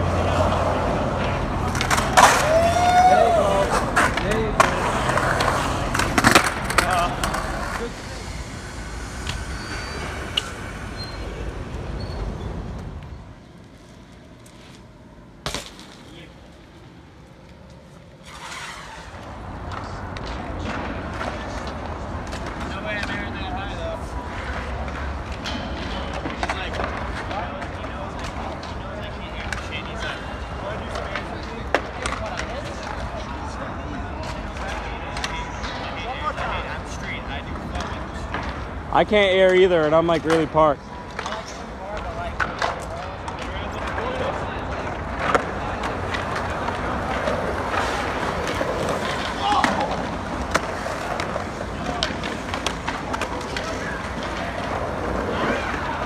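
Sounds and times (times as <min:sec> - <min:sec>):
people chatting: 0:00.0 - 0:11.6, 0:16.0 - 0:16.4, 0:19.7 - 0:56.0
skateboard wheels rolling on concrete: 0:00.0 - 0:56.0
skateboard impacts: 0:00.1 - 0:11.9, 0:12.7 - 0:56.0.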